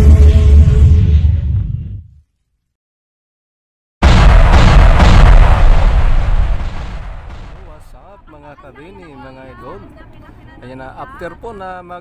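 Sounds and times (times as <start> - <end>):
loud booming explosion: 4.0 - 8.0.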